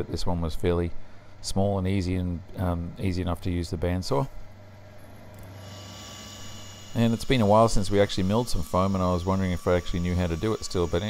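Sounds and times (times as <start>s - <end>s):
electrical hum: 0.0s - 11.0s
faint high-pitched whine: 5.0s - 11.0s.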